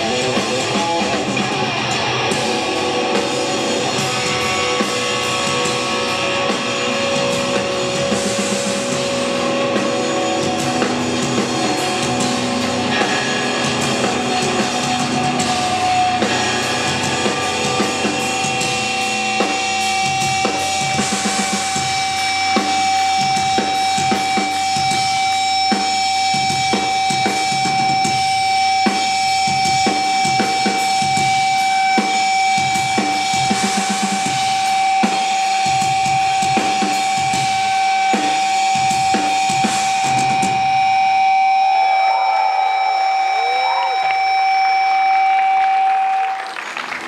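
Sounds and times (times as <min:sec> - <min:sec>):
guitar feedback: 0:00.0 - 0:46.7
drum kit accents: 0:00.0 - 0:47.0.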